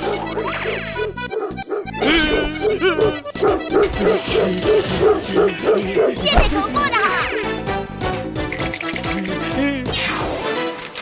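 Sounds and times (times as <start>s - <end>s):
cartoon dogs barking: 0.0s - 7.5s.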